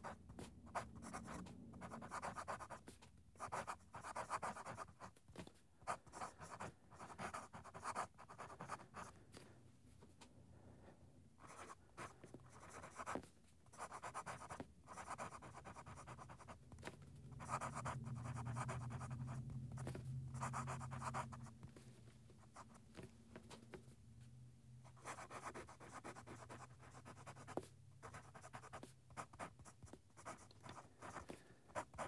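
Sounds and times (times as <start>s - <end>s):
fountain pen scratching on paper: 0.0s - 5.2s, 5.8s - 9.1s, 11.4s - 21.6s, 22.4s - 23.1s, 24.9s - 32.0s
low steady hum: 5.8s - 32.0s.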